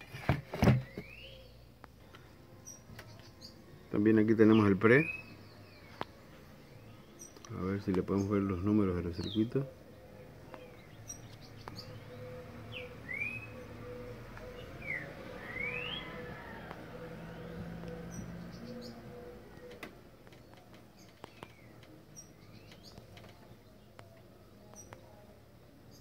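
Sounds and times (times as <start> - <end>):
birds chirping faintly: 0.0 - 26.0.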